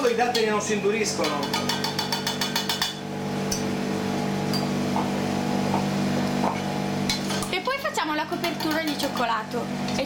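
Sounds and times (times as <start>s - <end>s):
low machine hum: 0.0s - 10.0s
fork clinking against metal cup: 1.2s - 3.6s.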